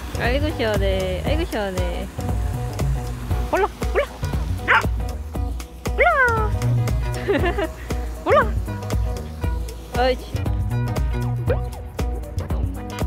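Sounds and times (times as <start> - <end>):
background music with steady beat: 0.0 - 13.0
dog yipping and barking: 3.5 - 4.9, 5.9 - 6.5, 8.2 - 8.6, 11.5 - 11.8.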